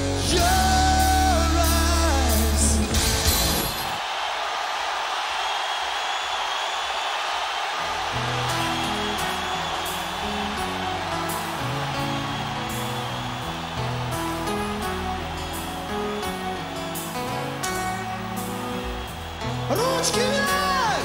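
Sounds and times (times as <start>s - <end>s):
stadium crowd cheering: 0.0s - 21.0s.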